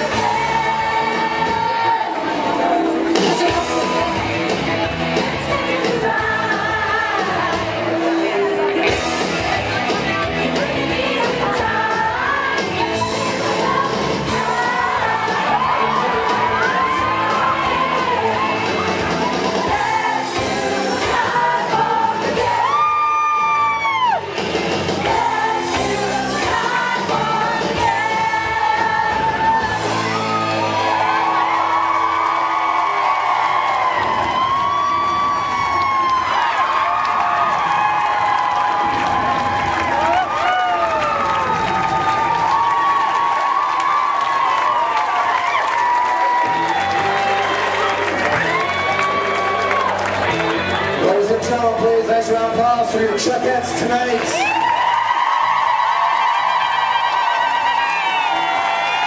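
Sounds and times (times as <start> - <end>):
pop music with singing: 0.0 - 59.0
audience cheering and whooping: 12.2 - 25.0, 28.0 - 51.0, 54.0 - 59.0.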